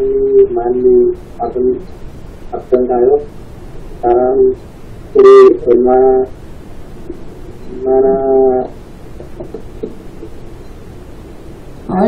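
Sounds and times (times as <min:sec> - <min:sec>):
steady pitched tone: 0:00.0 - 0:03.4, 0:04.0 - 0:06.4, 0:07.0 - 0:08.8
background hiss: 0:00.0 - 0:12.0.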